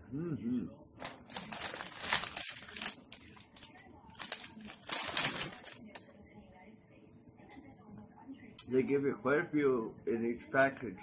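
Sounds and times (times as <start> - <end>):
plastic packaging crinkling: 1.0 - 6.0.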